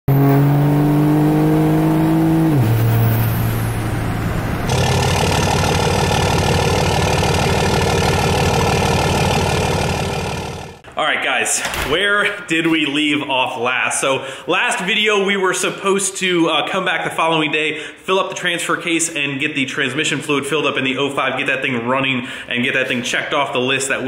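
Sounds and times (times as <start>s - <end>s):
diesel engine drone inside cab: 0.1s - 10.8s
man talking: 10.9s - 24.0s.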